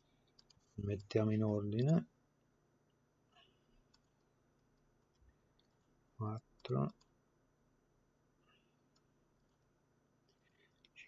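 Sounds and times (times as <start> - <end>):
faint computer mouse clicks: 0.3 - 1.1.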